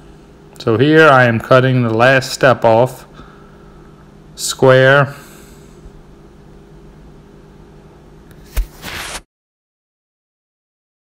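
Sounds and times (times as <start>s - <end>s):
faint low room hum: 0.0s - 9.2s
brief rush of noise: 8.5s - 9.3s.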